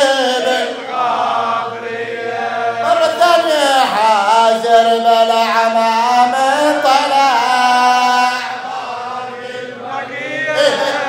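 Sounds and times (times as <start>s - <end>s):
man chanting into microphone: 0.0s - 11.0s.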